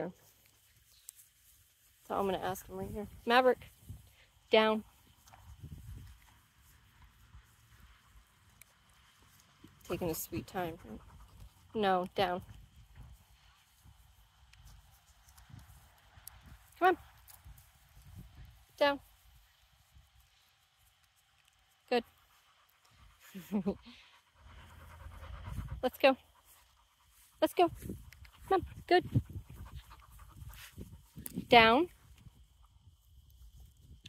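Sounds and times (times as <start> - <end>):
dog panting quickly: 9.9 - 11.8, 22.1 - 31.2
low wind rumbling: 17.4 - 18.8, 23.8 - 26.5, 27.2 - 34.0.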